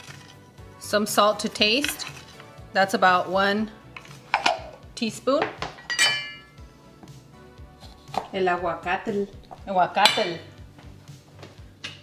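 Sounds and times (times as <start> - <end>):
metal utensil clink: 5.8 - 6.5.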